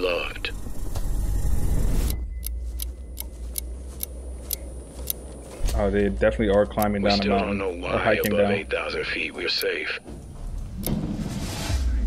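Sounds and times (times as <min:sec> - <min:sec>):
low bass drone: 0:00.0 - 0:09.2
sharp ticks: 0:02.0 - 0:05.4, 0:06.3 - 0:09.8.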